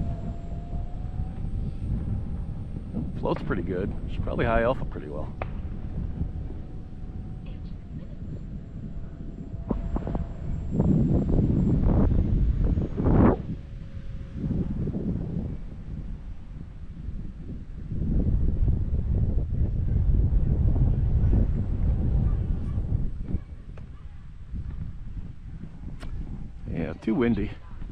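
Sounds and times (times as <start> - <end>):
distant rc jet whine: 0.0 - 27.9
wind buffeting microphone: 0.0 - 27.9.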